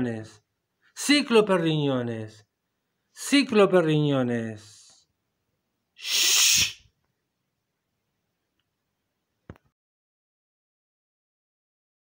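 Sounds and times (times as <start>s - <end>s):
sharp breathy burst of air: 6.0s - 6.9s.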